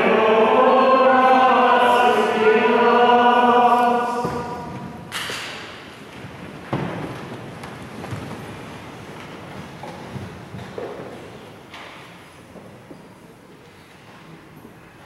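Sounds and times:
knocks and rustles in church: 0.0 - 15.0
echoing thump: 4.2 - 5.6.

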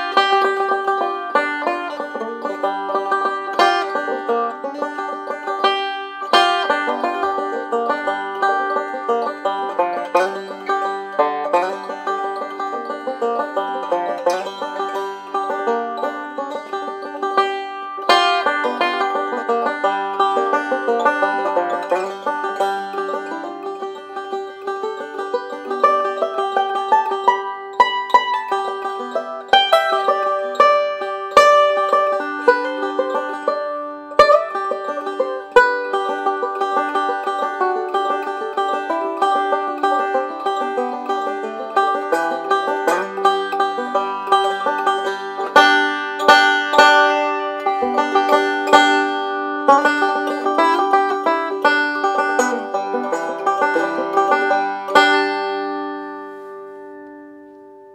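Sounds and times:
banjo played fingerstyle: 0.0 - 57.9.

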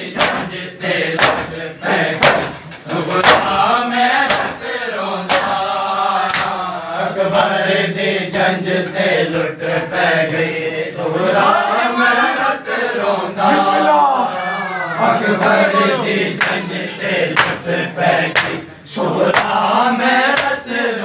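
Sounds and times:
men chanting a lament: 0.0 - 14.4, 15.0 - 21.0
hands slapping bare chests: 1.2 - 1.5, 6.3 - 6.6, 18.3 - 18.6.

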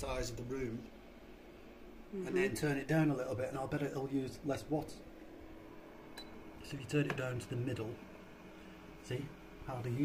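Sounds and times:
man speaking: 0.0 - 0.9, 2.2 - 5.0, 6.6 - 8.0, 9.0 - 10.0
fan heater humming: 0.0 - 10.0.

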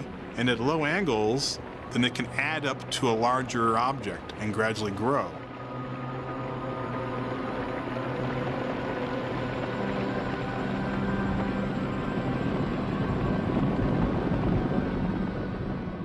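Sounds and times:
low droning tones: 0.0 - 16.0
rumbling hiss: 0.0 - 16.0.

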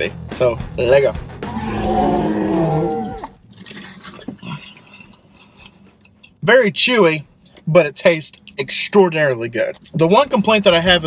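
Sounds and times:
man chewing food: 2.9 - 6.4.

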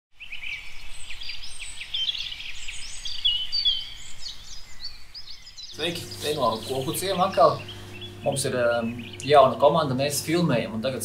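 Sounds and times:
birds chirping and twittering: 0.2 - 10.9.

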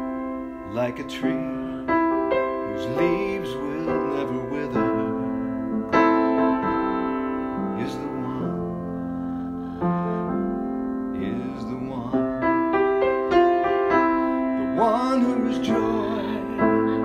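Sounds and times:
keyboard piano chords: 0.0 - 17.0.

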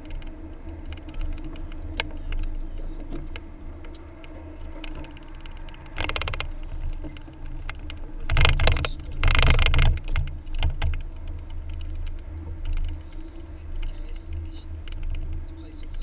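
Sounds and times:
rapid rattling and knocking: 0.0 - 16.0
road rumble inside car: 0.0 - 16.0.

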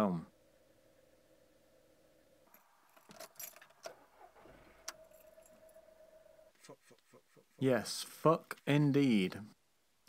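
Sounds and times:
keys jangling: 2.5 - 5.8.

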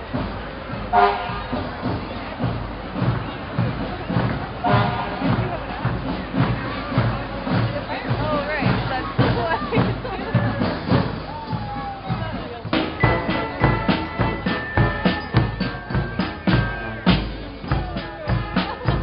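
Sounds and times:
crowd voices and chatter: 0.0 - 19.0
marching drum beats: 0.0 - 19.0.

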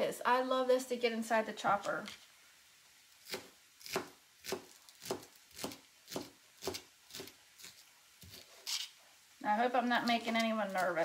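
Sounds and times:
knife chopping on cutting mat: 3.3 - 8.5.

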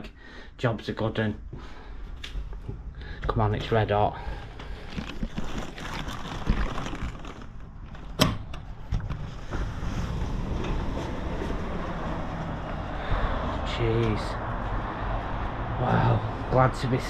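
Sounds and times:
plastic rustling: 4.4 - 8.2
road traffic: 7.6 - 17.0
sliding door opening: 7.9 - 13.6.

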